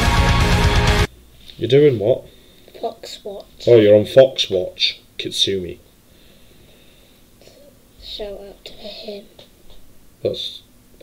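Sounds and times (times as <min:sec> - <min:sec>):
breathing into microphone: 0:06.1 - 0:07.3.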